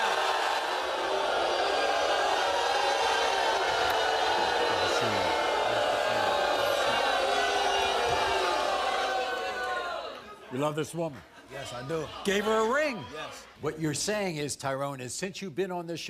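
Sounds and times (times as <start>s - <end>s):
audience shouting and whooping: 0.0s - 10.4s.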